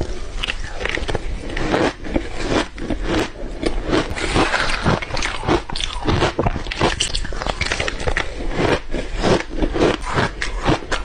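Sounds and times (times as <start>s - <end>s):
chewing crunchy ice: 0.0s - 11.0s.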